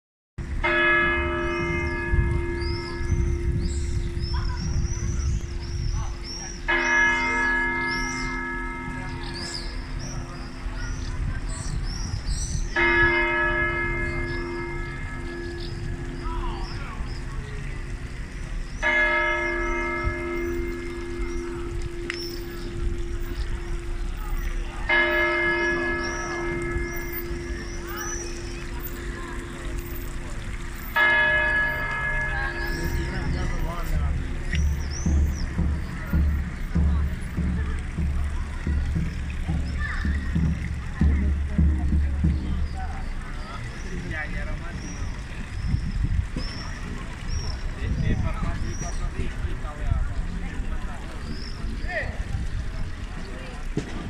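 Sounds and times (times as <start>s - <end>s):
church bell tolling: 0.6s - 11.5s, 12.7s - 18.0s, 18.8s - 38.1s
small birds chirping: 1.4s - 53.8s.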